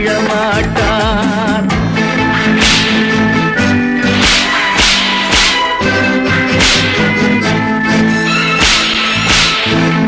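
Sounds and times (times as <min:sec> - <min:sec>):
sharp swishing percussive hits: 0:02.3 - 0:07.6, 0:08.4 - 0:10.0.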